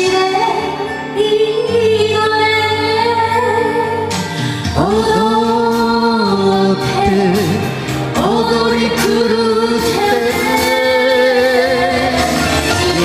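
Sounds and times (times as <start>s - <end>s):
ballad duet singing: 0.0s - 13.0s
karaoke backing track: 0.0s - 13.0s.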